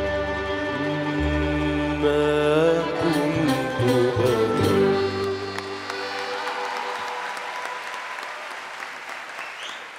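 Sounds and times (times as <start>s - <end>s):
live band chord: 0.0s - 6.5s
audience applause: 5.2s - 9.9s.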